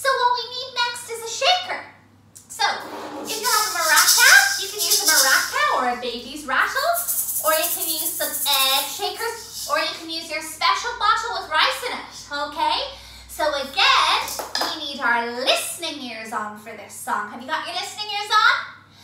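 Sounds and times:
woman talking: 2.5 - 18.5
maracas rattling: 2.8 - 10.0.

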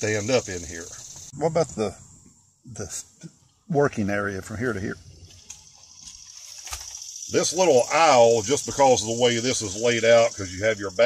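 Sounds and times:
faint high hiss: 0.0 - 5.6, 6.6 - 11.0.

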